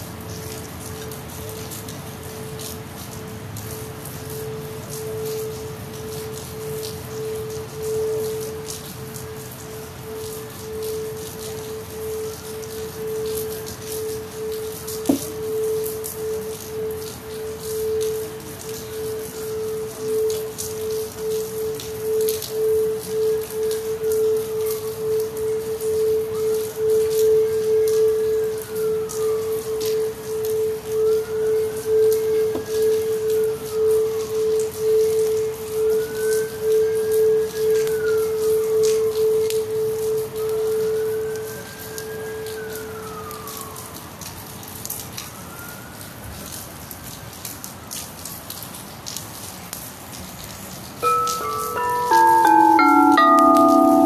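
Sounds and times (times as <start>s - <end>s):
singing bowl steady tone: 0.0s - 43.8s, 51.0s - 54.0s
rain dripping and pattering: 0.0s - 54.0s
faint siren wailing: 0.4s - 46.7s, 51.0s - 54.0s.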